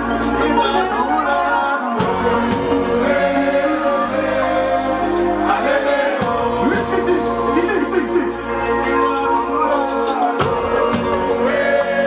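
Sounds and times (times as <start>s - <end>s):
crowd singing along: 0.0s - 12.0s
live band music: 0.0s - 12.0s.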